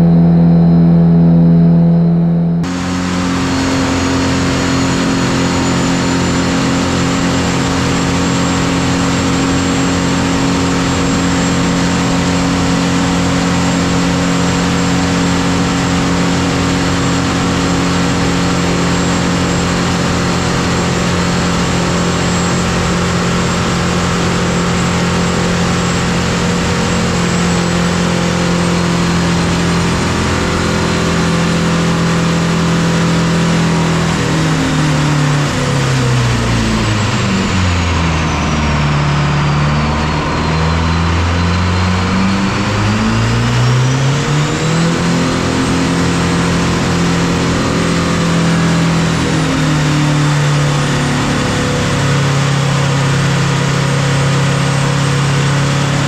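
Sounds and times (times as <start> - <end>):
diesel engine running: 0.0 - 56.0
high whine: 0.0 - 56.0.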